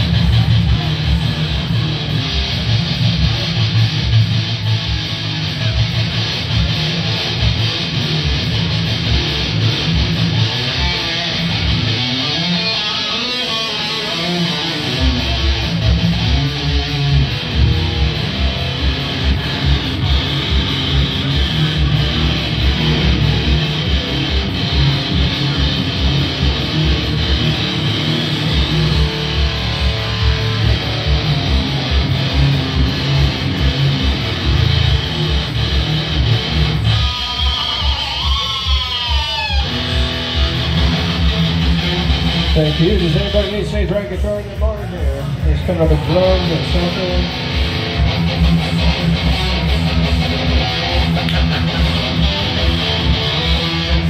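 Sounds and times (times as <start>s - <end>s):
heavy metal band playing: 0.0s - 54.0s.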